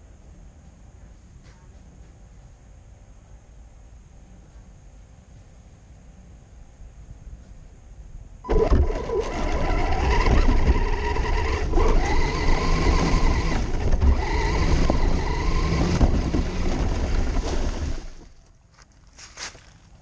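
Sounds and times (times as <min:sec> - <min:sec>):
electric motor and gears whining: 0:08.4 - 0:18.4
chassis rumbling and rattling: 0:08.4 - 0:18.6.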